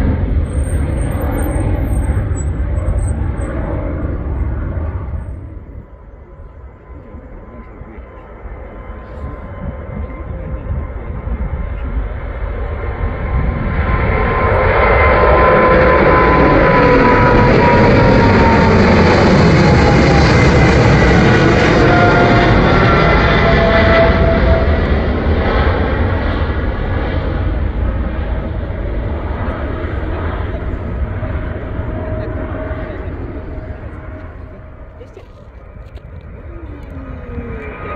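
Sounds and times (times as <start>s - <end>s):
jet plane taking off overhead: 0.0s - 37.9s.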